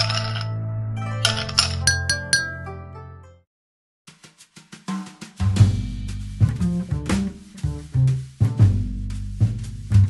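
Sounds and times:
spoon clinking against glass: 0.0s - 0.5s, 1.2s - 2.6s.

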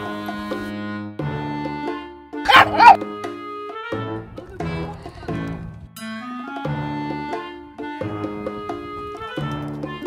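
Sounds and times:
background music: 0.0s - 10.0s
dog barking: 2.5s - 3.0s.

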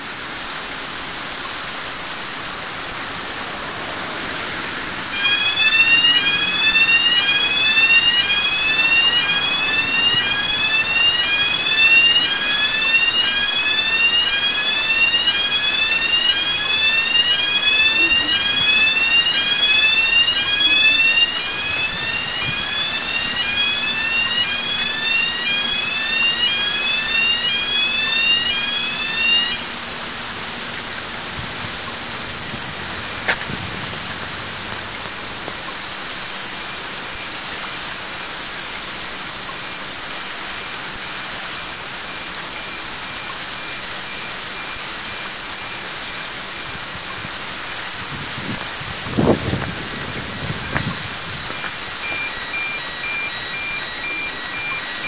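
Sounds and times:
heavy rain hissing: 0.0s - 55.0s
electronic rising warning tone: 5.1s - 29.9s, 49.2s - 55.0s.

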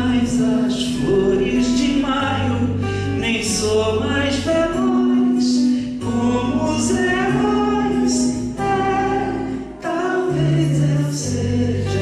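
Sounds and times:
acoustic guitar: 0.0s - 12.0s
man singing: 0.0s - 12.0s.

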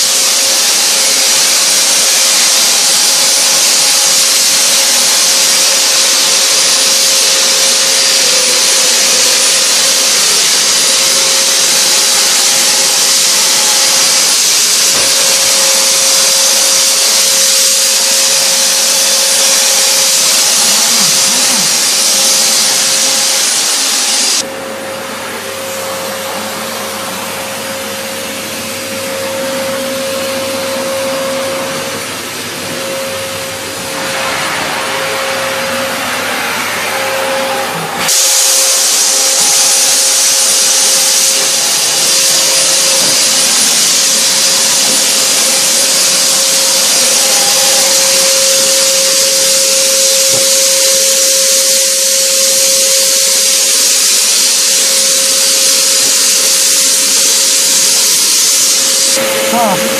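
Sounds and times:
fogger blower motor whining: 0.0s - 59.9s.

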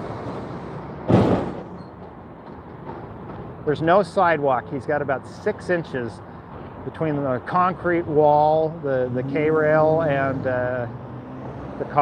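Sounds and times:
traffic passing close by: 0.0s - 12.0s
loud thump: 1.0s - 1.8s.

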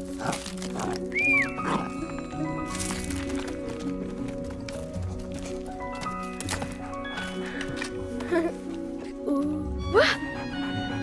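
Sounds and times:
background music of held notes: 0.0s - 11.0s.

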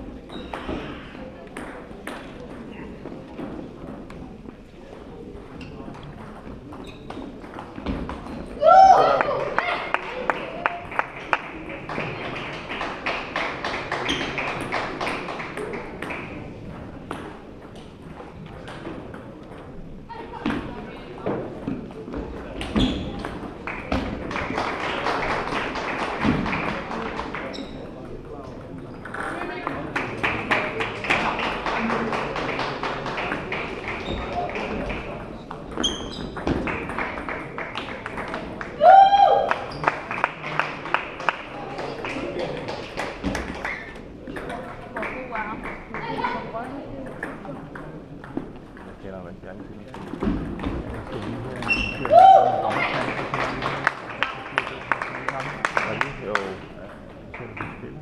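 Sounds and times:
voices in a large hall: 0.0s - 58.0s.

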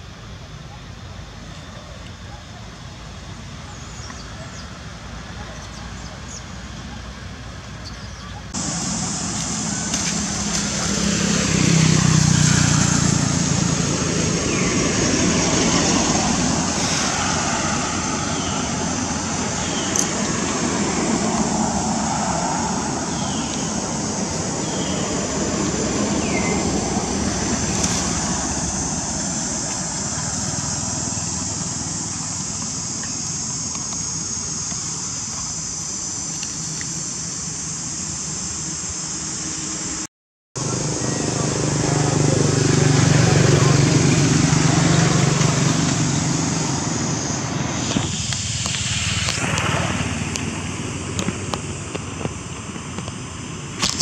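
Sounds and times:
passing road traffic hum: 0.0s - 54.0s
high-pitched drone: 40.6s - 50.5s.

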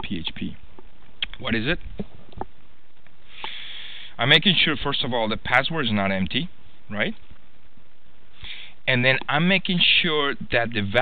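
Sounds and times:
faint clicks: 2.0s - 3.6s.

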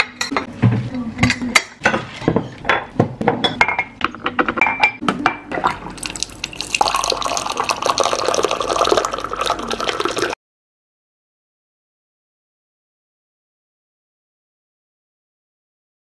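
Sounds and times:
kitchenware clinking and knocking: 0.0s - 5.7s
hot water pouring into mug: 5.6s - 10.4s.

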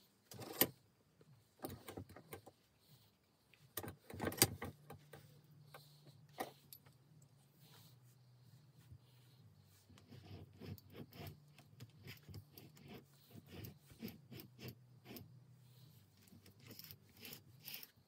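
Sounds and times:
faint steady hum: 0.0s - 18.0s.

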